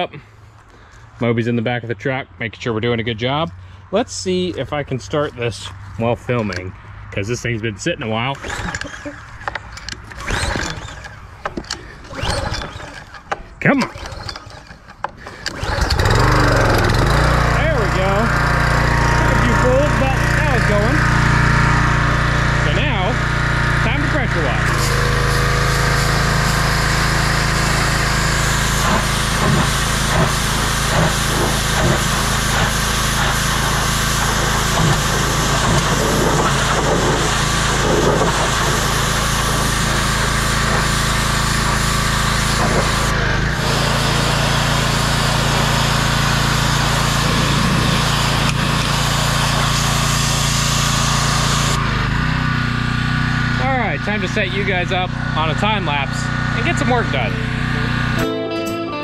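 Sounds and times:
pressure washer engine running: 7.4 - 58.3
high-pressure spray hissing on metal: 28.0 - 36.4.

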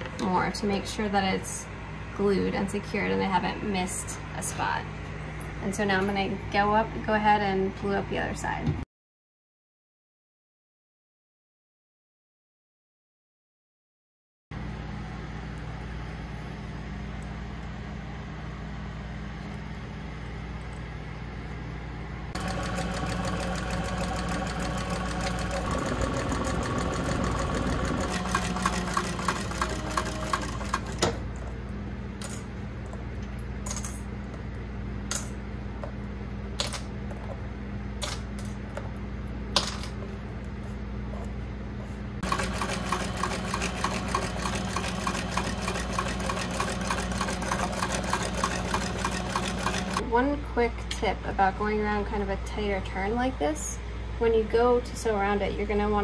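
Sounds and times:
machine hum: 14.6 - 37.9, 40.1 - 50.2
sewing machine stitching leather: 22.4 - 31.1, 42.2 - 50.0.

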